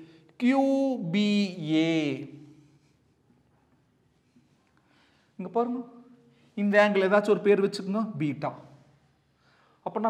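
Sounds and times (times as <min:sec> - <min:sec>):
man speaking: 0:00.0 - 0:02.6, 0:05.4 - 0:08.7.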